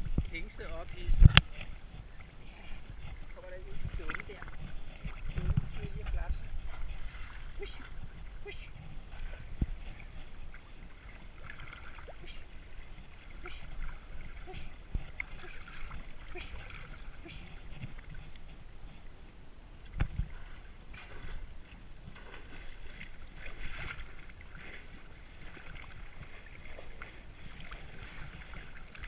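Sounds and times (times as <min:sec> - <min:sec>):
water sloshing and splashing: 0:00.0 - 0:29.0.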